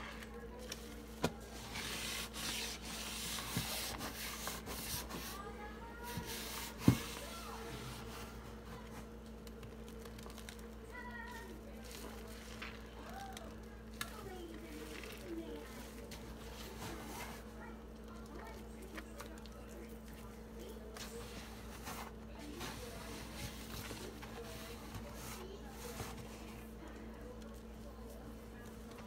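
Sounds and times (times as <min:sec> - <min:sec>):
soapy sponges squishing: 0:00.6 - 0:08.9, 0:09.9 - 0:28.8
sponges squelching in soapy water: 0:00.7 - 0:08.4.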